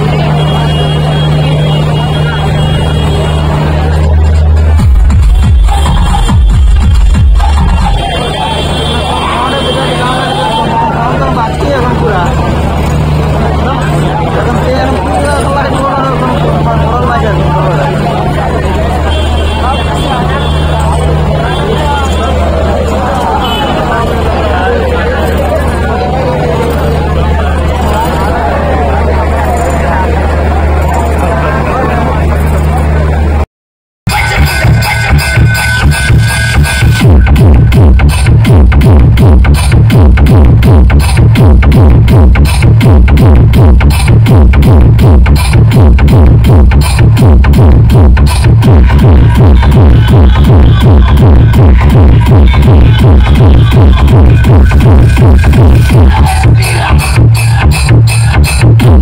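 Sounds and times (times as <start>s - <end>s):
voice over heavy bass music: 0.0s - 33.4s, 34.1s - 59.0s
electronic dance beat: 3.5s - 8.6s, 34.1s - 59.0s.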